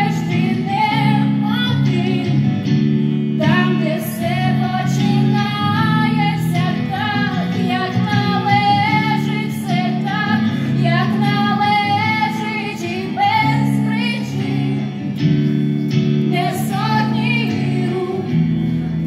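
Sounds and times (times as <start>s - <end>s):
guitar chords: 0.0s - 19.0s.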